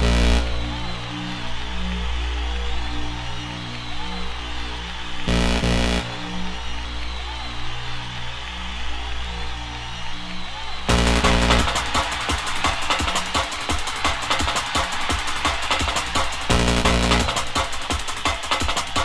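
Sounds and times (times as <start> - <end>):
repeating synth riff: 0.0 - 0.7, 5.3 - 6.2, 10.9 - 12.0, 16.5 - 17.6
held synth bass: 0.0 - 1.1, 5.3 - 6.7, 10.9 - 12.0, 16.5 - 17.5
dance beat: 10.9 - 19.0.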